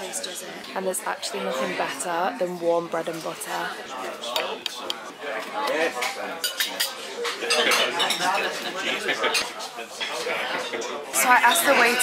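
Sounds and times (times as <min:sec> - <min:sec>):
diners chattering: 0:00.0 - 0:12.0
cutlery and dishes clinking: 0:04.2 - 0:10.3.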